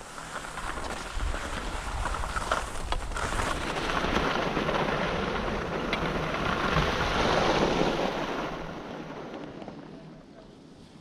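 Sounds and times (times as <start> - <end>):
skis scraping over snow: 0.0 - 11.0.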